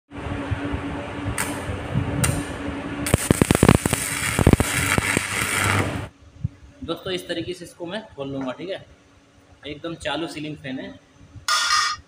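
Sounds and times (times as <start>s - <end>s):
steady electrical hum: 0.1s - 12.0s
electric arc crackling: 1.4s - 6.1s.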